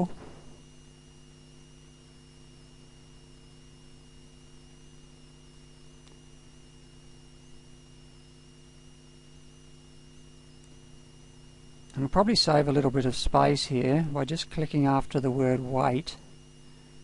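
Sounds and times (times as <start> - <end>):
electrical hum and buzz: 0.0 - 17.0
thin high whine: 0.0 - 17.0
faint click: 6.0 - 6.2.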